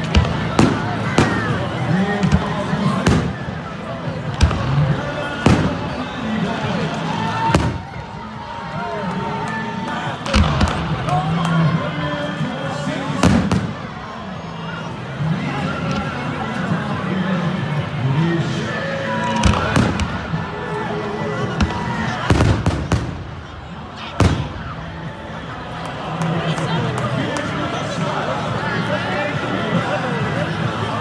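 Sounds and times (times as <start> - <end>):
firecrackers banging: 0.0 - 8.4, 10.2 - 11.8, 13.0 - 14.0, 19.2 - 25.1
crowd voices and chanting: 0.0 - 31.0
firecracker bang: 2.2 - 3.6, 24.2 - 24.7.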